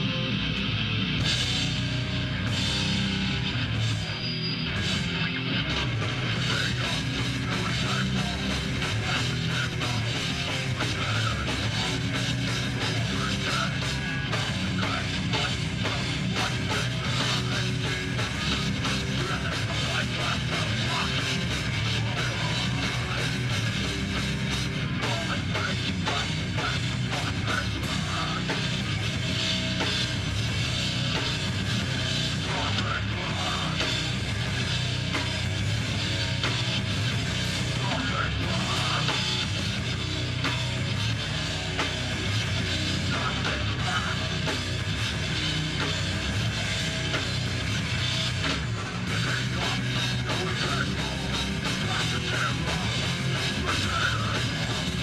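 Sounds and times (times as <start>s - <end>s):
bass guitar: 0.0s - 55.0s
distorted electric guitars: 0.0s - 55.0s
pounding drum kit: 0.0s - 55.0s.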